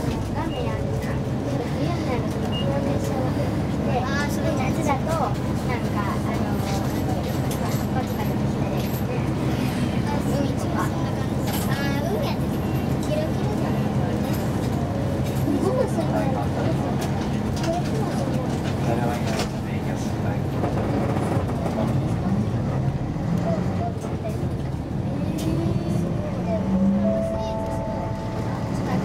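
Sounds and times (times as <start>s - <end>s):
bus engine droning: 0.0s - 29.0s
passengers talking quietly: 0.0s - 29.0s.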